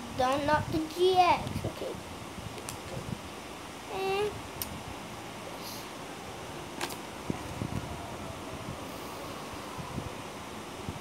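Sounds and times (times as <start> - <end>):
low room noise: 0.0 - 11.0
child's wordless vocal sound: 3.9 - 4.4.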